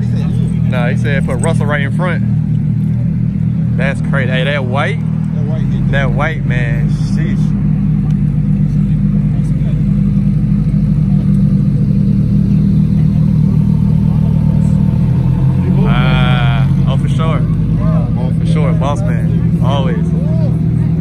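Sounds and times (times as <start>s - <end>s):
people talking: 0.0s - 2.3s, 3.7s - 10.2s, 15.6s - 21.0s
car engine idling: 0.0s - 21.0s.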